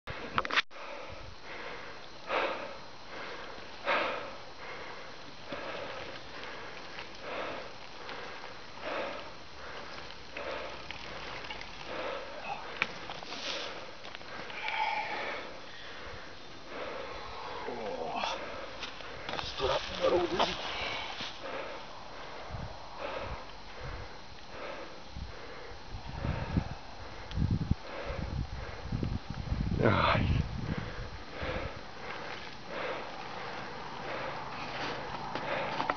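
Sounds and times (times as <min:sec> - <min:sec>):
person breathing: 0:00.1 - 0:29.0, 0:29.8 - 0:35.9.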